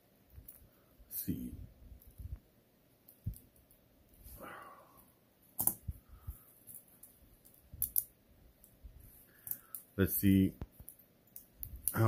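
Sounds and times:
soft rustle: 0:08.6 - 0:09.8.

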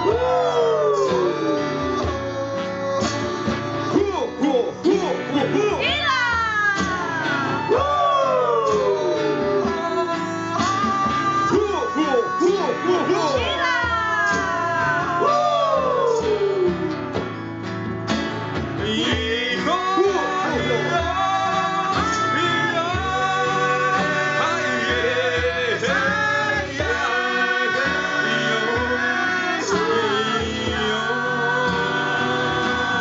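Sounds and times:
live band playing: 0:00.0 - 0:33.0.

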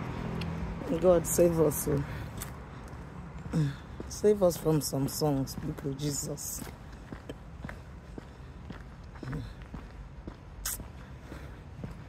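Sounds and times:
footsteps on brick paving: 0:00.3 - 0:12.0.

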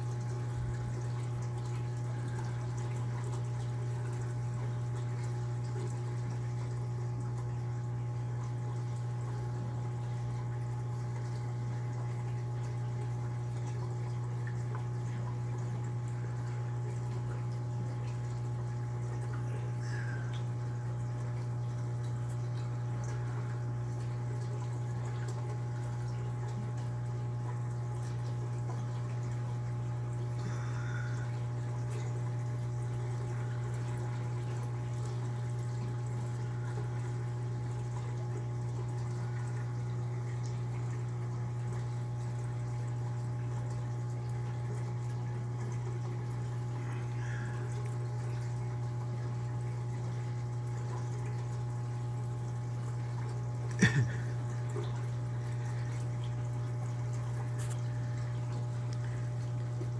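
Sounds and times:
aquarium pump hum: 0:00.0 - 0:59.9
faint water drip: 0:00.0 - 0:59.9
water trickling: 0:00.0 - 0:59.9.

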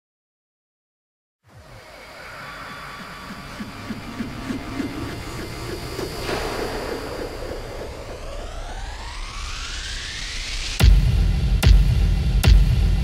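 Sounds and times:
wash of noise: 0:01.5 - 0:10.8
low rumble: 0:01.5 - 0:13.0.

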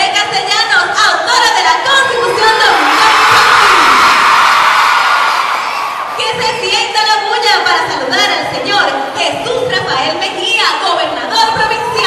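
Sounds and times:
crowd of children cheering: 0:02.2 - 0:06.2.

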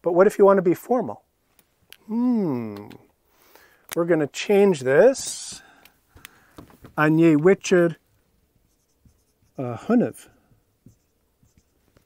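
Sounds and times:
man saying uh: 0:02.1 - 0:03.0
marker writing on whiteboard: 0:08.7 - 0:09.6, 0:10.9 - 0:11.9.

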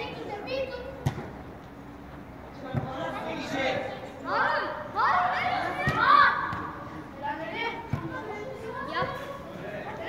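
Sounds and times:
children calling out: 0:04.3 - 0:06.7.

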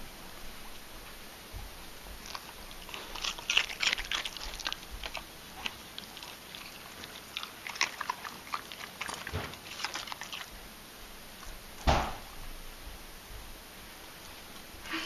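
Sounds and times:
dog crunching carrot: 0:02.1 - 0:10.7.

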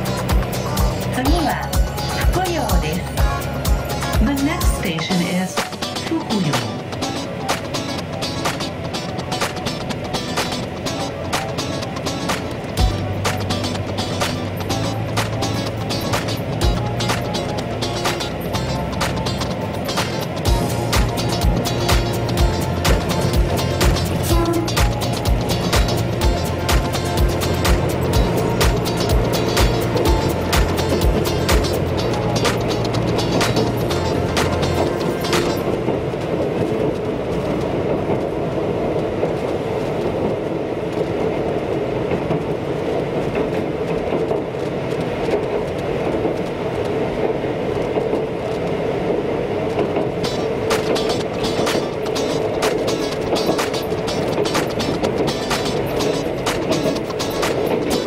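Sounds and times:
music: 0:00.0 - 0:36.2, 0:50.2 - 0:58.0
train rolling rumble: 0:00.0 - 0:58.0
train wheels clicking over rail joints: 0:06.9 - 0:58.0.

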